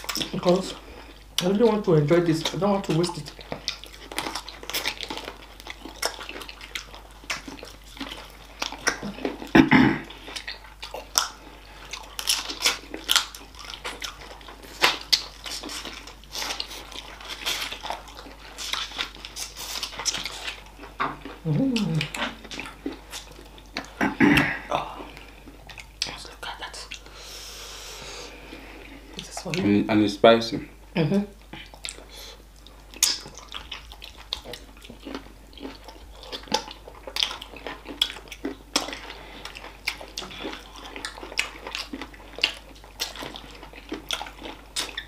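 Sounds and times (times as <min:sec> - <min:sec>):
people eating with wet sucking: 0:02.5 - 0:29.6, 0:31.4 - 0:45.0
person humming: 0:21.4 - 0:22.4, 0:24.0 - 0:25.2.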